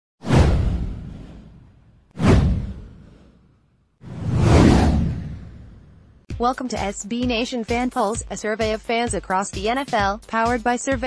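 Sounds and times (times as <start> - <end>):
deep low boom: 0.3 - 3.3, 4.1 - 6.2
downward whoosh: 4.0 - 6.2.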